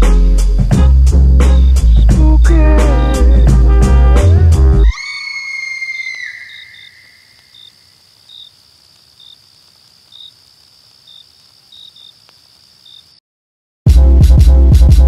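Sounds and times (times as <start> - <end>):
hip-hop beat with heavy bass: 0.0 - 4.8, 13.9 - 15.0
cricket chirps: 1.5 - 3.7, 4.8 - 13.2
steady hiss: 6.7 - 13.1.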